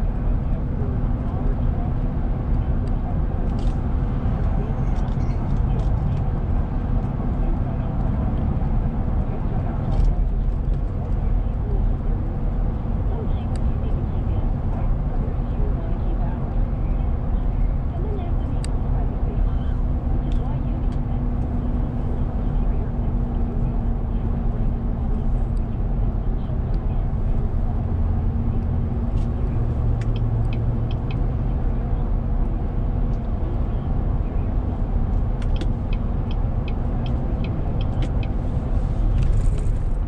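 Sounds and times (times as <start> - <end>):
tyre and engine rumble inside car: 0.0 - 40.0.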